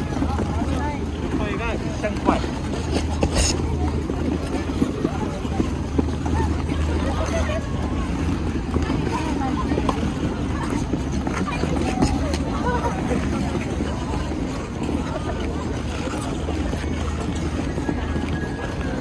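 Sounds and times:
people chattering: 0.0 - 19.0
skate blades scraping ice: 0.0 - 19.0.

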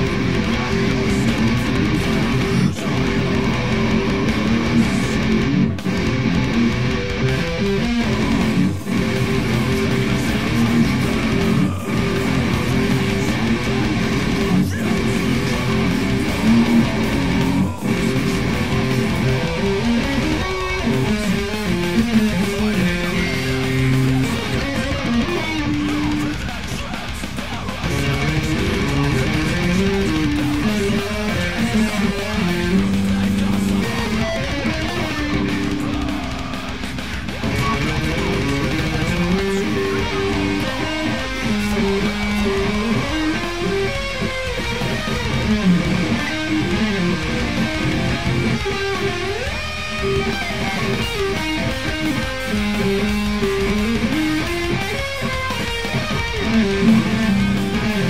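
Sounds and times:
electric guitar riff: 0.0 - 58.0
recorded metal band music: 0.0 - 58.0.

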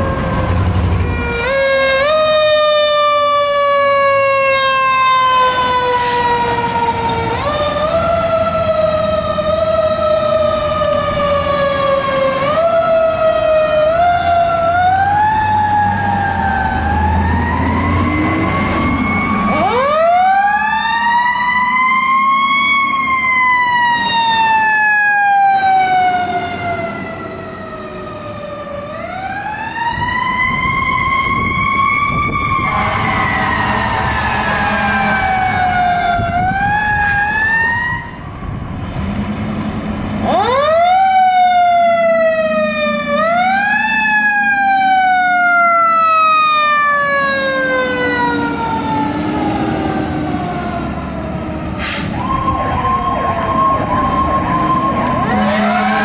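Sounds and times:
fire truck sirens wailing: 0.0 - 56.0
truck engine rumbling: 0.0 - 56.0.

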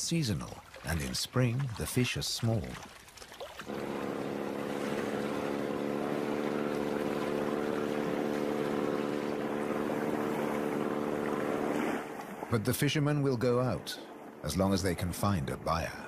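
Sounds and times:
water rushing: 0.0 - 16.0
wind: 0.0 - 16.0
boat motor running: 3.6 - 16.0.

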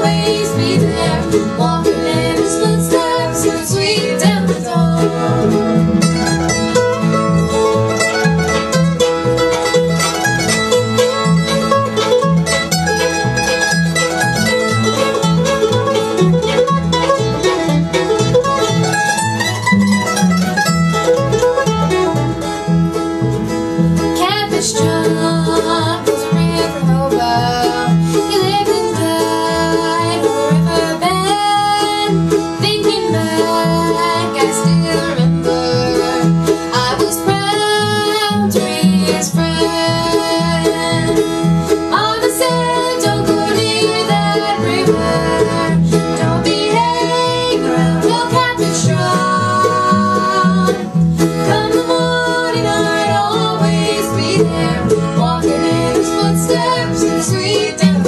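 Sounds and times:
bluegrass string band playing: 0.0 - 58.0
fiddle: 0.0 - 58.0
plucked banjo-like lead: 0.0 - 58.0
upright bass: 0.0 - 58.0.

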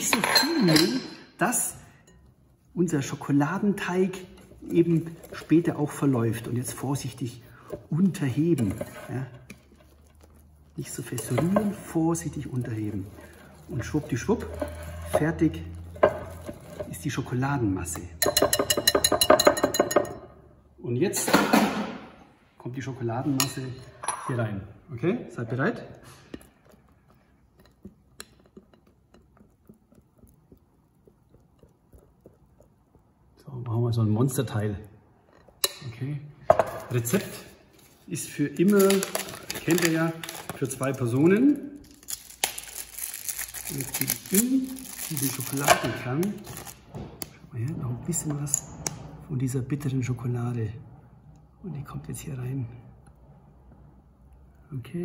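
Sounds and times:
crinkling and rustling: 36.8 - 47.0.

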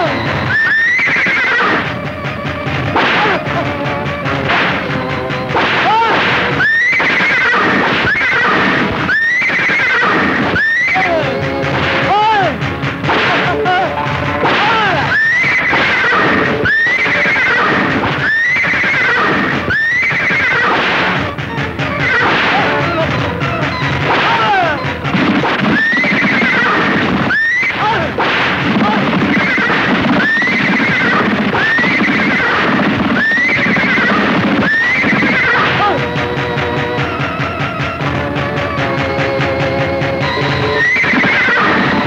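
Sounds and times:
horse whinnying: 0.0 - 3.9, 5.8 - 12.6, 13.4 - 36.3, 40.2 - 42.0
galloping hooves: 0.0 - 42.0.

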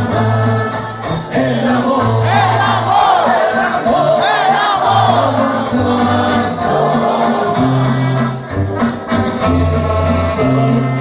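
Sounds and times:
crowd noise: 0.0 - 11.0
tuba bass notes: 0.0 - 11.0
voices singing together: 0.0 - 11.0.

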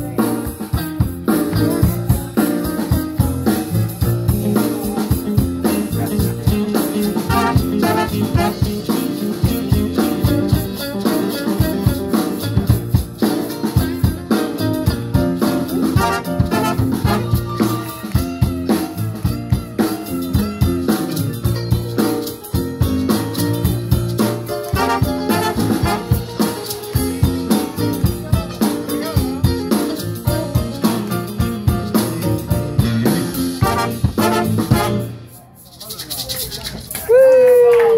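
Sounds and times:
upright bass: 0.0 - 37.7
drum kit: 0.0 - 37.9
blues band horn section: 5.6 - 9.2, 10.0 - 12.8, 14.6 - 17.9, 24.6 - 26.6, 33.5 - 35.4.

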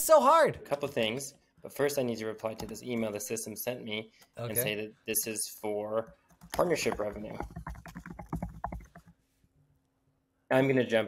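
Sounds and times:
computer keyboard typing: 2.5 - 3.1, 6.1 - 9.2.

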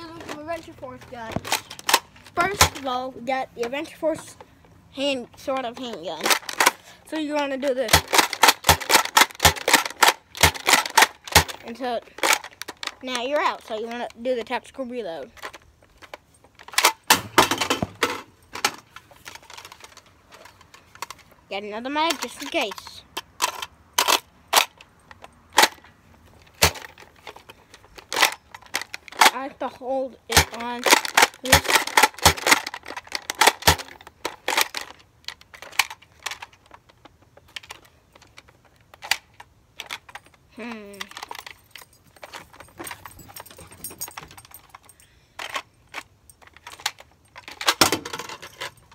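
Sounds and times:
toy dart blaster plastic clicks: 7.8 - 11.6, 30.3 - 34.8.

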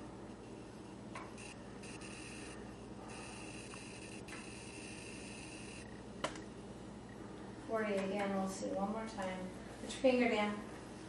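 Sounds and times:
faint pure tone from headphones: 0.4 - 6.0.

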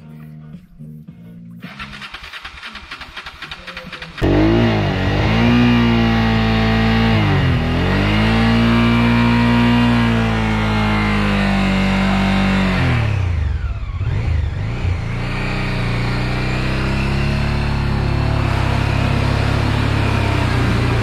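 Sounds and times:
motorcycle engine revving: 1.6 - 21.0.

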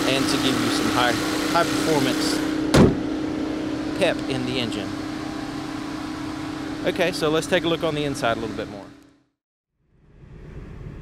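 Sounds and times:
mechanical hum with steady tone: 0.0 - 11.0.

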